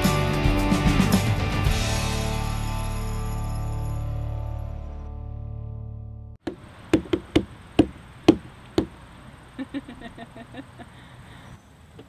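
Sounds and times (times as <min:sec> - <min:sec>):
sharp knocks: 0:06.4 - 0:09.0.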